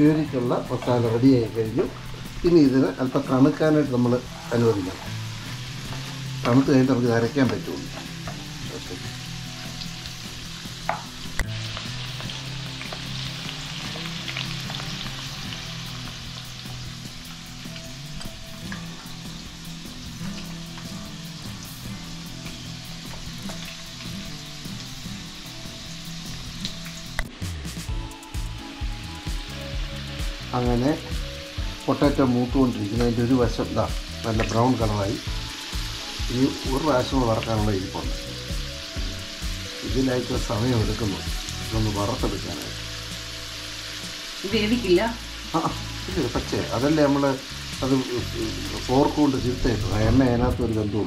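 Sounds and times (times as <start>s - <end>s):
potatoes sizzling in hot oil: 0.0s - 51.0s.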